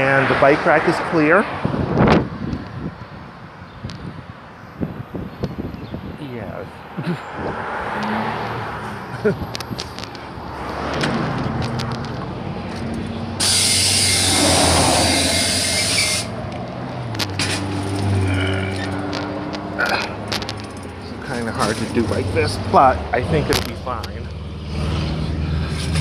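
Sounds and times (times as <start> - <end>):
air brakes hissing: 13.4 - 16.4.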